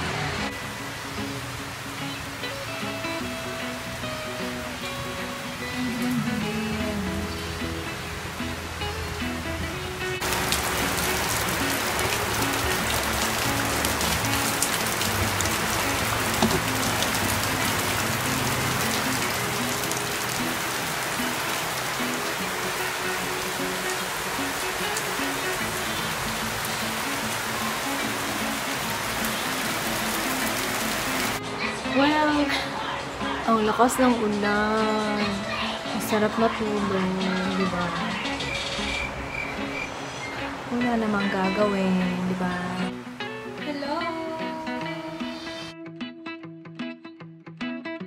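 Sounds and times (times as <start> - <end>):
steady rain hiss: 0.0 - 45.7
background music: 0.0 - 48.0.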